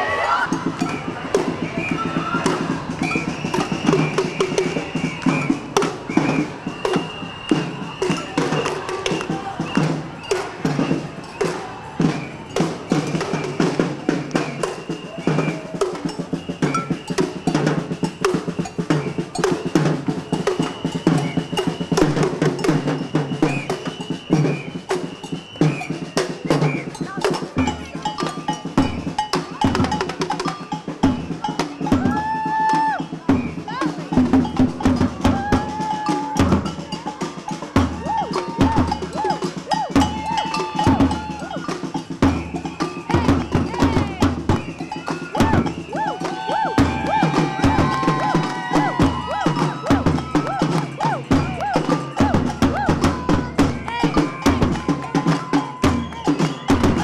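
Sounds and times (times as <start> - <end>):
marching snare drums: 0.4 - 57.0.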